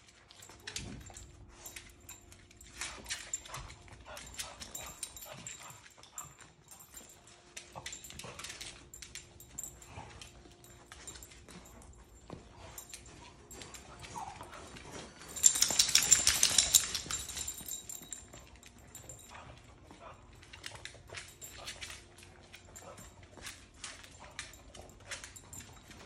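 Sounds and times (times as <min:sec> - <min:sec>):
dog claws clicking on hard floor: 0:00.4 - 0:19.6.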